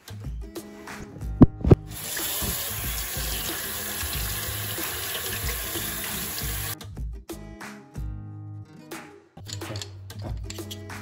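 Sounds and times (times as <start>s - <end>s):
tap water running into sink: 1.4s - 6.8s.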